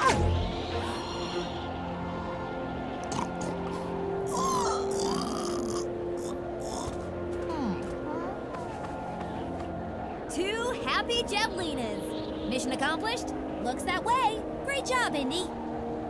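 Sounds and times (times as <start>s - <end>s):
cartoon background music: 0.0s - 2.4s, 3.0s - 9.4s.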